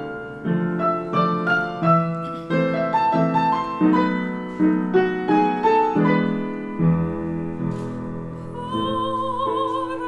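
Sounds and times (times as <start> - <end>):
slow lyrical piano: 0.0 - 10.0.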